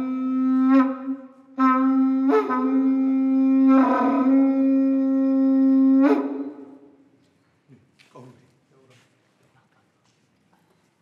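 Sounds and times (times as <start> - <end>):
conch-shell trumpet blast: 0.0 - 4.5.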